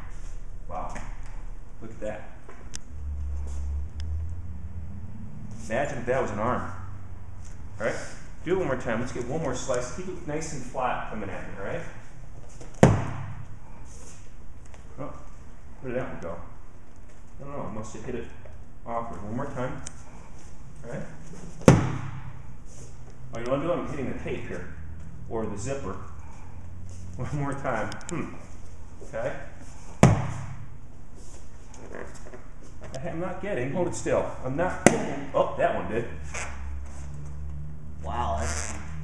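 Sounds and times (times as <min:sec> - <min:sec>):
knife smacking punching mitt: 0:12.8 - 0:13.3, 0:21.6 - 0:22.3.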